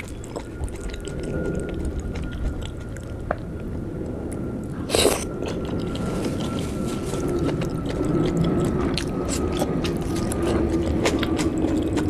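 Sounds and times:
close chewing with wet mouth sounds: 0.0s - 12.0s.

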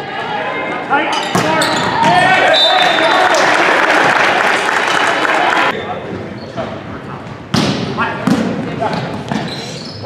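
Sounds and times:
crowd shouting and cheering: 0.0s - 5.8s.

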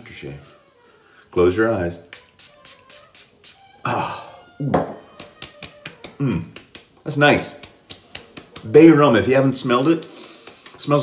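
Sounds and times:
spray bottle hissing: 2.0s - 3.8s.

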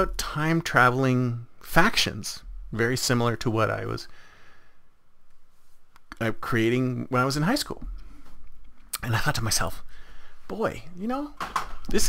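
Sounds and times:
man breathing: 4.1s - 5.0s, 9.8s - 10.5s.

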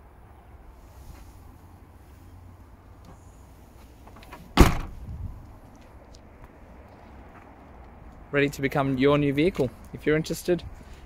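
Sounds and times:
car tailgate slamming shut: 4.5s - 5.0s.

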